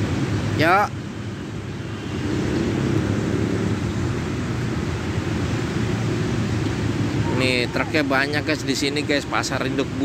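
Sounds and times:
traffic: 0.0 - 10.0
truck engines rumbling: 0.0 - 10.0.

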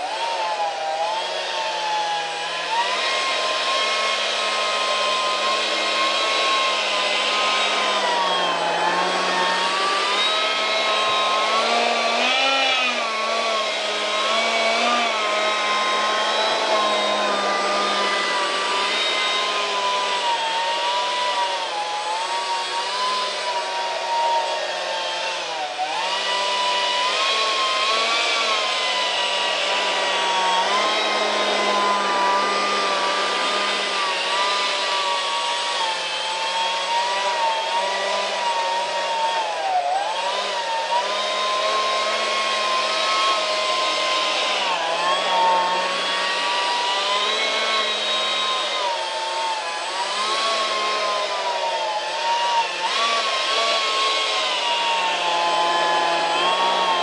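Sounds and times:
electric ducted fan whine: 5.7 - 12.2.

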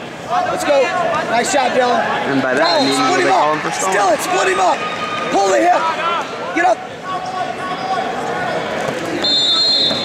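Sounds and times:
people shouting: 1.9 - 8.2
shrill whistle: 2.6 - 3.2, 9.2 - 10.0.

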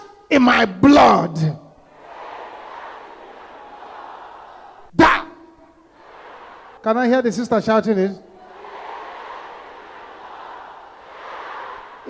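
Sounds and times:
women praying aloud: 8.2 - 12.0.

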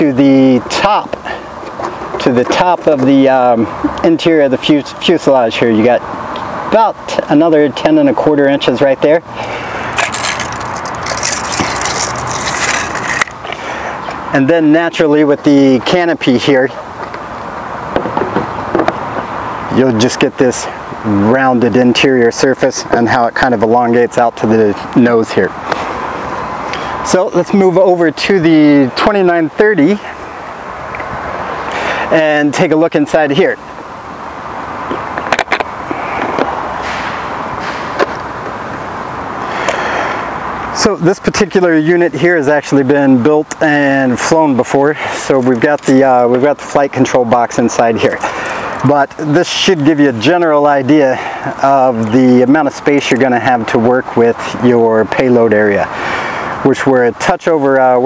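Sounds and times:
outdoor background hiss: 0.0 - 58.0
crackly scraping and rustling: 1.6 - 3.3, 10.0 - 14.2, 34.9 - 36.6.

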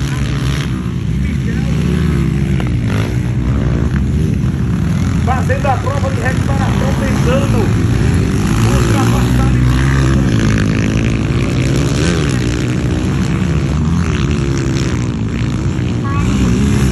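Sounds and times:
dirt bike engines revving: 0.0 - 16.9.

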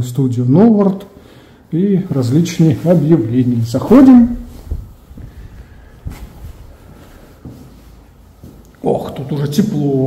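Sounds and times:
faint footsteps: 1.2 - 9.8.

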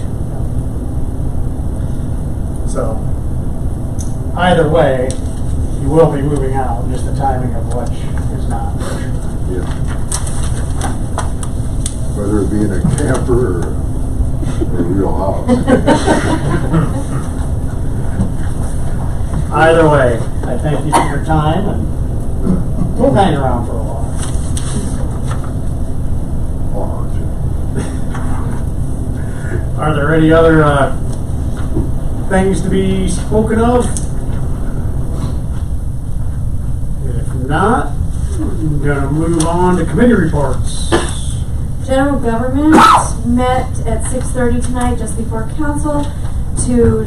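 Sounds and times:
low room rumble: 0.0 - 47.0.

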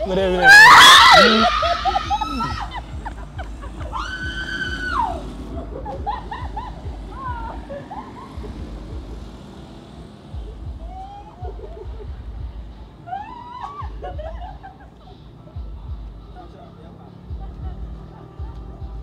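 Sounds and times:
women screaming: 0.0 - 8.4, 10.4 - 12.0, 13.0 - 14.5
women shouting: 0.3 - 3.0, 3.8 - 5.4, 7.0 - 7.9, 10.6 - 11.7, 13.0 - 14.2.

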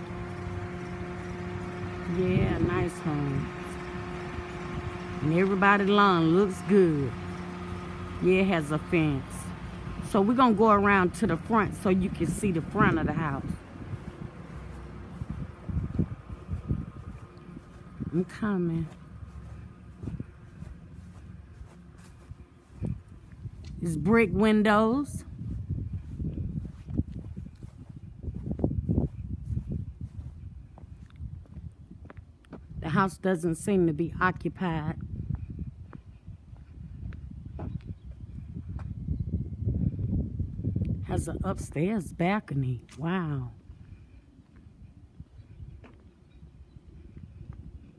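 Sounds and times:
wind on microphone: 0.0 - 47.9.

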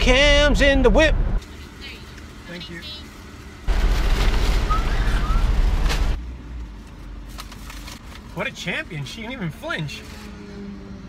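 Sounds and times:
plastic bag rustling: 3.7 - 6.2.

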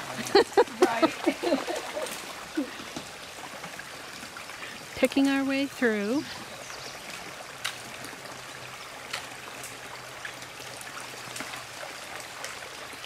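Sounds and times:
running water: 0.0 - 13.0.

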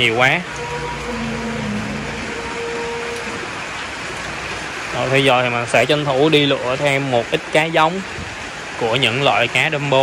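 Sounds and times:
heavy rain on water: 0.0 - 10.0.

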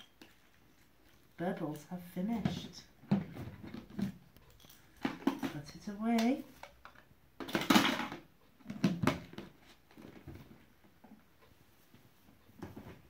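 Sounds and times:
toy clattering into plastic bucket: 2.4 - 9.4
rustling and shuffling: 8.7 - 13.0.

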